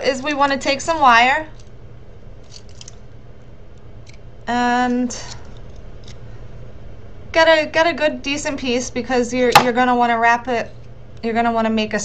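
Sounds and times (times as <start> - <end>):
steady low hum: 0.0 - 12.0
wire clicking and rustling: 2.4 - 3.1.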